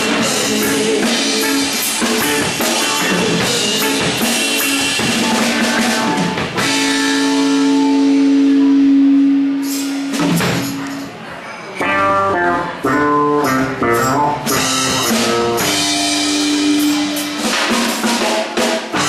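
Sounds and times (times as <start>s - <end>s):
electric guitar notes: 0.0s - 19.0s
live rock band playing: 0.0s - 19.0s.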